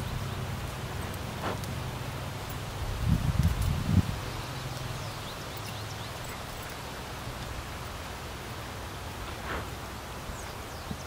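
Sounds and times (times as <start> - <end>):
leaves rustling: 0.0 - 11.0
low wind rumble: 0.0 - 11.0
wind buffeting microphone: 2.5 - 5.7.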